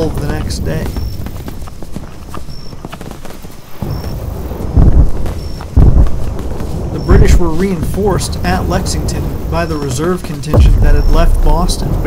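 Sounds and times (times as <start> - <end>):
horse hooves clip-clopping: 0.0 - 12.0
heavy booms: 3.8 - 9.7, 10.6 - 12.0
battle soundtrack music: 10.6 - 12.0.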